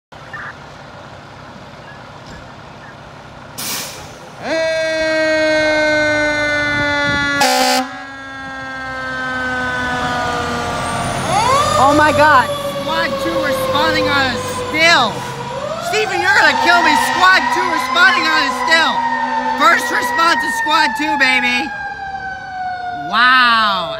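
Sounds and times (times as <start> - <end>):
air brake hiss: 3.6 - 4.3
fire engine siren: 4.4 - 23.9
loud horn tone: 6.7 - 8.0.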